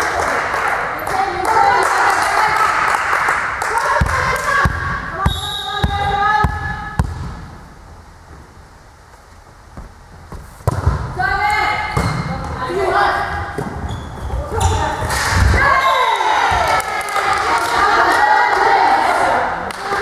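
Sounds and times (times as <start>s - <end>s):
ball being struck thuds: 4.6s - 7.6s, 9.8s - 11.1s, 11.9s - 12.6s
players shouting calls: 14.5s - 20.0s.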